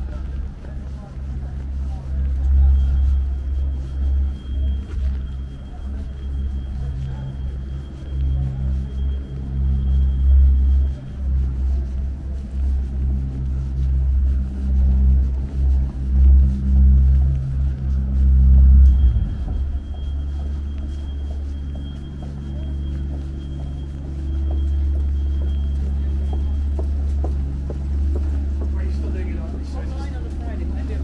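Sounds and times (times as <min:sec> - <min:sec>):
city traffic rumble: 0:00.0 - 0:31.0
vehicle engine running: 0:00.0 - 0:31.0.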